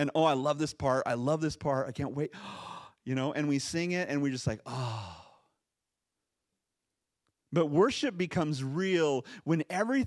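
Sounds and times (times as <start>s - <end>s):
man sighing into microphone: 4.6s - 5.5s.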